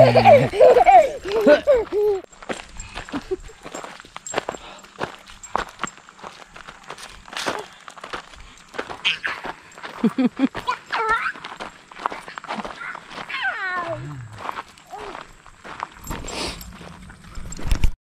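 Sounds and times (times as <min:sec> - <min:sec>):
toddler vocalizing: 0:00.0 - 0:02.3, 0:12.8 - 0:14.3
footsteps crunching on gravel: 0:00.6 - 0:17.7.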